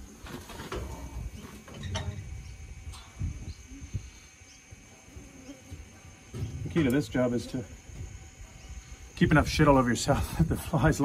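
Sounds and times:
low rumbling handling noise: 0.0s - 10.6s
flies buzzing: 0.0s - 11.0s.

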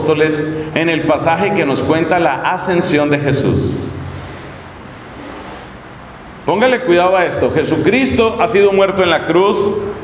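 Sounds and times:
voice: 0.0s - 3.8s, 6.5s - 9.8s
room background hiss: 0.0s - 10.0s.

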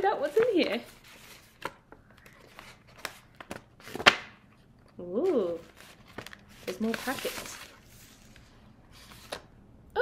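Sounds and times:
paper rustling: 0.2s - 4.2s, 5.2s - 9.5s.

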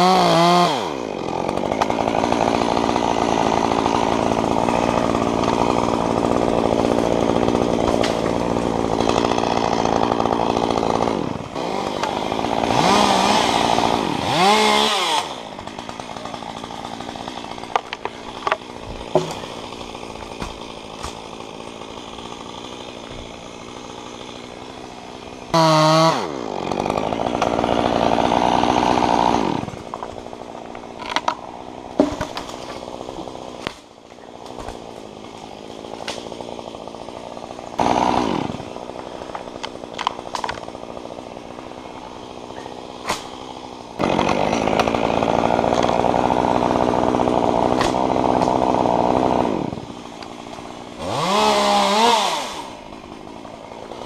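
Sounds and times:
chainsaw cutting wood: 0.0s - 54.0s.

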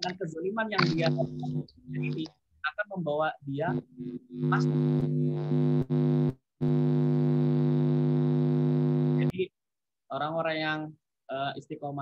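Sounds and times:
loud electrical buzz: 0.8s - 2.3s, 3.6s - 9.3s.

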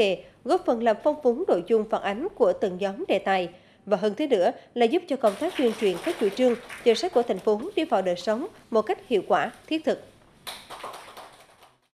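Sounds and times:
light applause: 5.3s - 7.6s, 10.4s - 11.9s.

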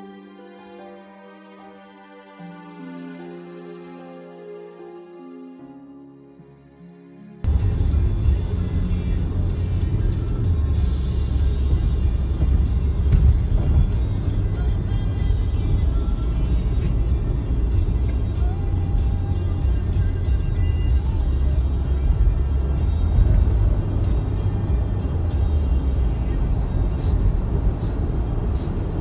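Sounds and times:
tyres and engine rumbling: 7.4s - 29.0s.

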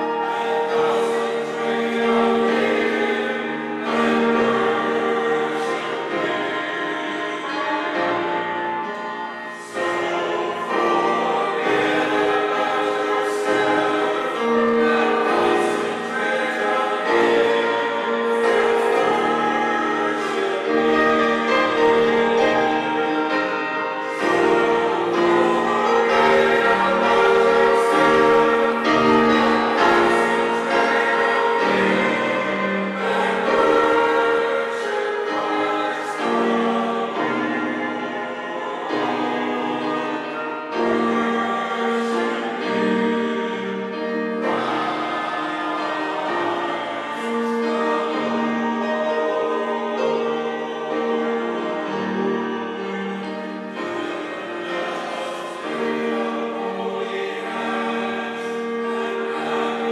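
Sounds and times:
church choir singing: 0.0s - 59.9s.

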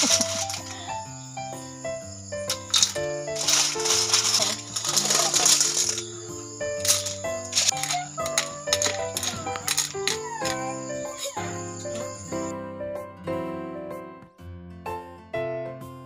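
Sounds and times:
snail shells clattering into a wok: 0.0s - 1.0s, 2.4s - 10.7s
background music: 0.0s - 16.0s.

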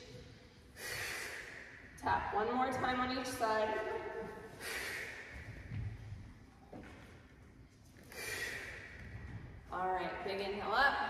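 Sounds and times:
woman's forceful exhale: 0.8s - 1.6s.

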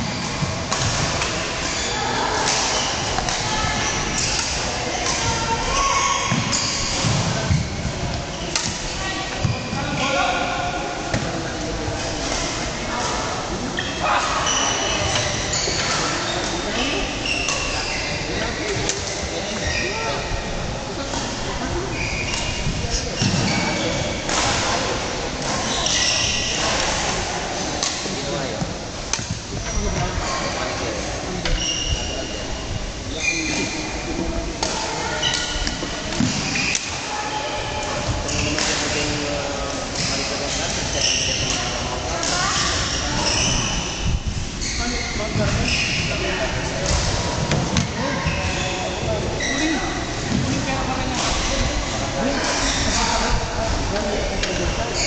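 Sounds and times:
shoes squeaking on court floor: 13.8s - 20.3s, 21.8s - 24.7s, 25.4s - 26.9s, 35.1s - 51.6s, 52.3s - 53.0s.

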